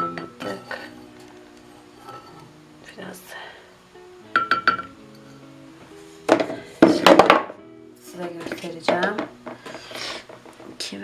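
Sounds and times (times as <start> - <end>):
wooden spoon knocking on glass jar: 4.4 - 4.9.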